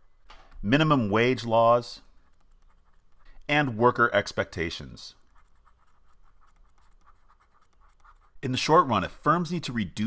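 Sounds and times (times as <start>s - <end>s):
stylus scratching on tablet: 1.2s - 3.8s, 4.5s - 8.8s.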